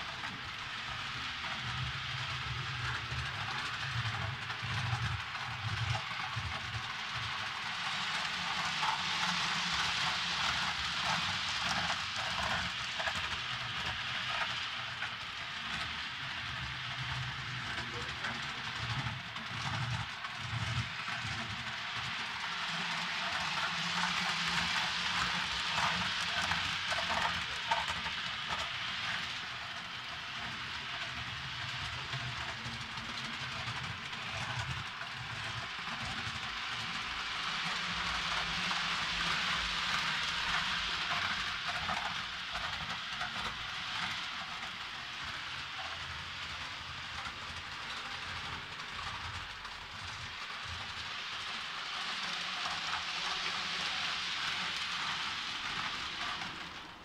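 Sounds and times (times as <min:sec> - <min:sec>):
model train running on track: 0:00.0 - 0:57.0.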